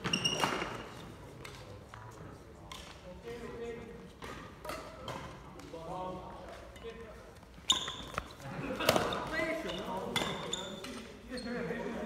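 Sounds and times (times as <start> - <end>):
rackets hitting shuttlecock: 4.2 - 5.9, 7.7 - 11.1.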